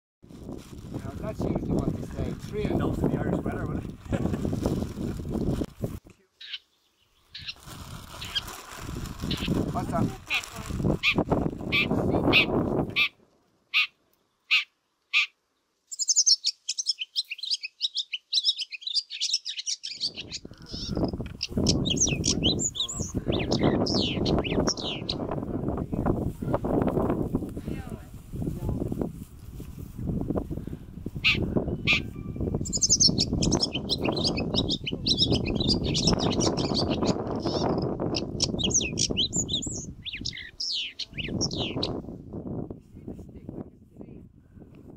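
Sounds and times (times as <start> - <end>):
songbird chirping and twittering: 6.2 - 7.6, 11.0 - 26.1, 31.2 - 42.0.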